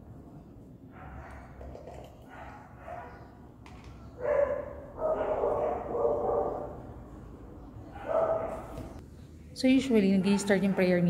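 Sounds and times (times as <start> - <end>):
dog barking: 2.2 - 3.3, 4.2 - 6.8, 7.9 - 8.8.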